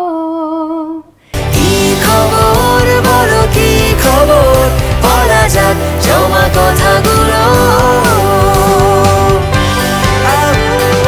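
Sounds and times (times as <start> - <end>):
pop song with vocals: 0.0 - 11.0.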